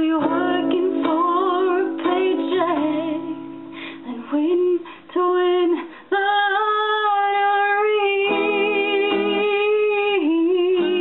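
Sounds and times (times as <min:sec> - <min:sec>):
acoustic guitar: 0:00.0 - 0:11.0
woman singing: 0:00.0 - 0:11.0.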